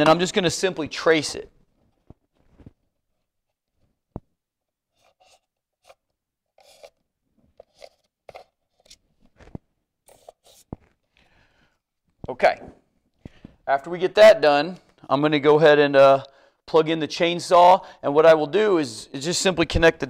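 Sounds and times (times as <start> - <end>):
pen scratching on foam: 4.9 - 7.0, 7.6 - 9.0, 10.0 - 10.9.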